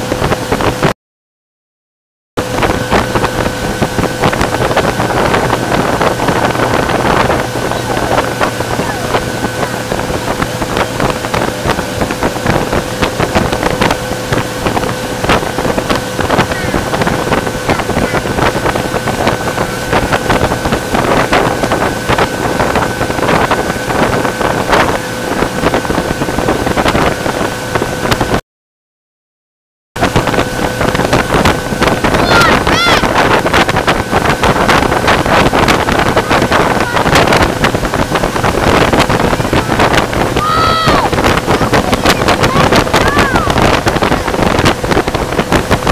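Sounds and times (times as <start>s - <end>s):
motorboat engine droning: 0.0s - 0.9s, 2.4s - 28.4s, 30.0s - 45.9s
water rushing in wake: 0.0s - 0.9s, 2.4s - 28.4s, 30.0s - 45.9s
wind buffeting microphone: 0.0s - 0.9s, 2.4s - 28.4s, 30.0s - 45.9s
person calling out: 32.2s - 33.2s, 40.4s - 43.6s.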